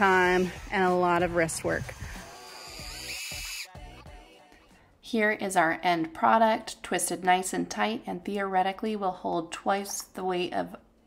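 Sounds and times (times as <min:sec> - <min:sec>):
background music: 0:00.0 - 0:08.0
cordless drill motor whine: 0:00.3 - 0:03.7.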